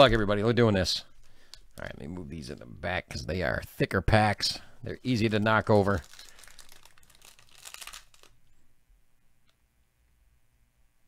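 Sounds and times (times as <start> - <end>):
foil wrapper tearing and crinkling: 5.0 - 8.4.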